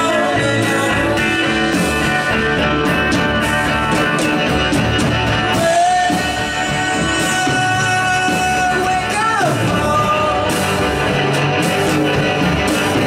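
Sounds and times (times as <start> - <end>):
electric guitar: 0.0 - 13.0
steady drum beat: 0.0 - 13.0.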